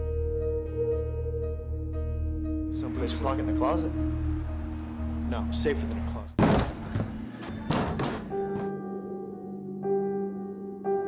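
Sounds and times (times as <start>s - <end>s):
sustained chord music: 0.0s - 11.0s
sharp knocks and thuds: 6.4s - 8.7s.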